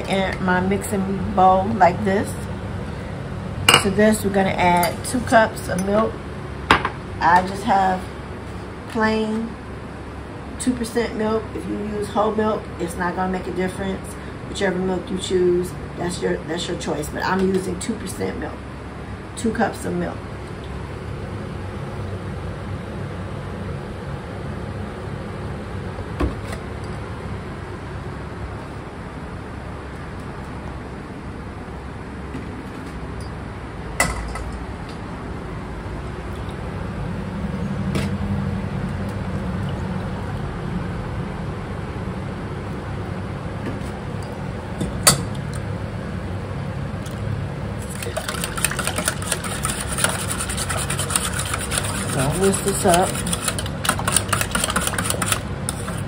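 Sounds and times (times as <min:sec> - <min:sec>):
steady low hum: 0:00.0 - 0:56.0
milk pouring: 0:47.8 - 0:52.2
whisk scraping steel bowl: 0:47.8 - 0:56.0.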